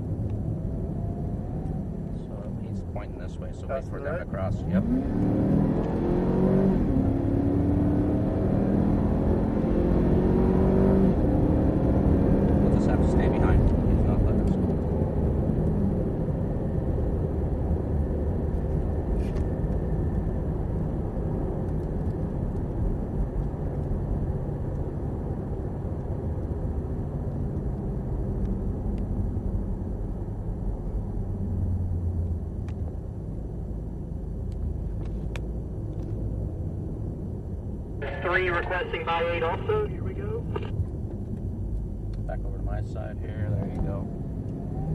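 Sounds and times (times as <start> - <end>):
car engine revving: 4.4 - 14.5.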